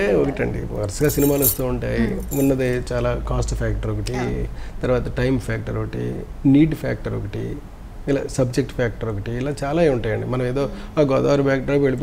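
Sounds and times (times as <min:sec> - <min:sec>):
man speaking: 0:00.0 - 0:03.0, 0:03.9 - 0:04.6, 0:05.6 - 0:12.0.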